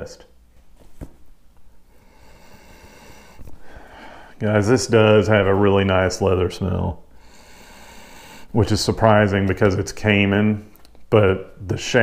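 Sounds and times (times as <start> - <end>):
man sniffing through his nose: 2.0 - 4.3, 7.2 - 8.5.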